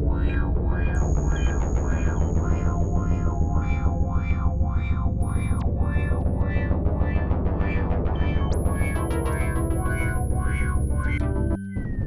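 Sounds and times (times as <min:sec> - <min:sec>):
heavy low synthesizer drone: 0:00.0 - 0:11.6
pulsing synthesizer notes: 0:00.0 - 0:12.0.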